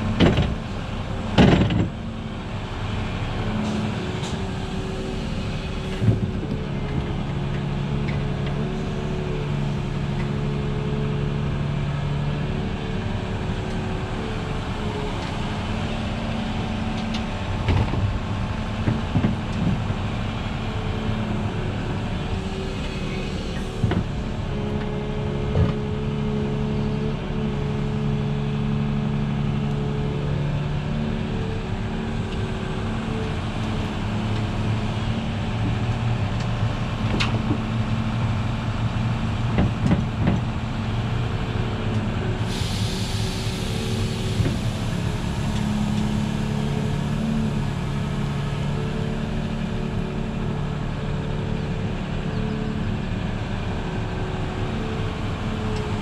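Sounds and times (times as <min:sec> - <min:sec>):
excavator diesel engine under load: 0:00.0 - 0:56.0.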